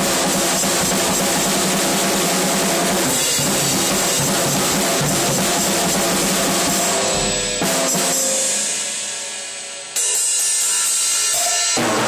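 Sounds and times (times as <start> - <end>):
drum kit played loudly: 0.0 - 12.0.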